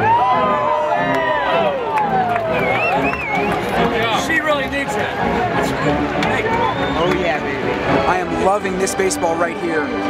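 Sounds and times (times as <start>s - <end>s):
crowd shouting long calls: 0.0s - 7.0s.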